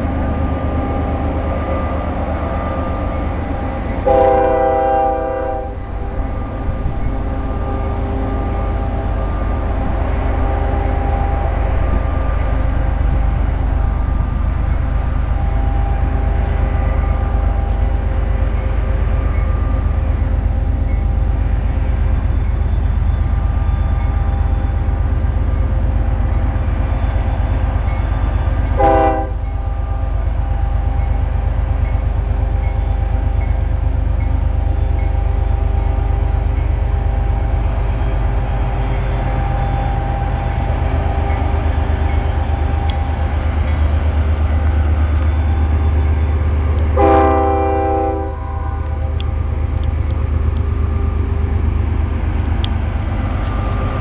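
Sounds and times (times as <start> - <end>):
diesel locomotive engine rumble: 0.0 - 54.0
locomotive air horn blasts: 4.0 - 5.8, 28.8 - 29.4, 47.0 - 49.2.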